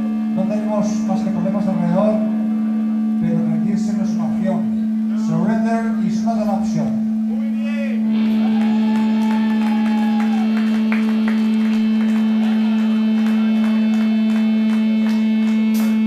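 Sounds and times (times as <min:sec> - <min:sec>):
metal band droning note: 0:00.0 - 0:16.0
wavering higher guitar note: 0:00.0 - 0:16.0.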